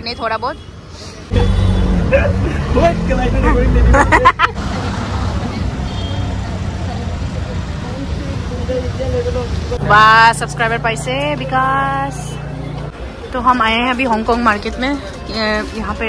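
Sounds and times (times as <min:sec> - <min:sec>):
auto-rickshaw engine rumbling: 0:00.0 - 0:16.0
rushing road noise: 0:00.0 - 0:16.0.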